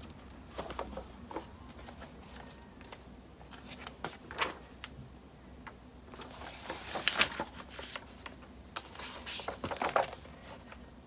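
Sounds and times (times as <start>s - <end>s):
paper rustling: 0.5s - 5.0s, 5.6s - 10.9s.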